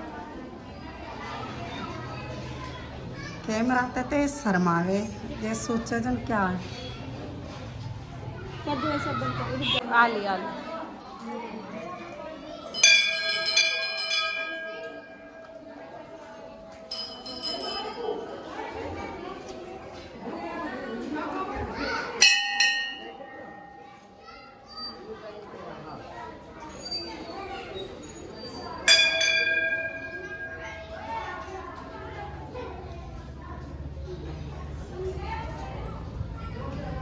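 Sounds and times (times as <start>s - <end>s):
brass temple bell ringing: 12.7s - 18.4s, 22.2s - 24.7s, 28.8s - 31.6s.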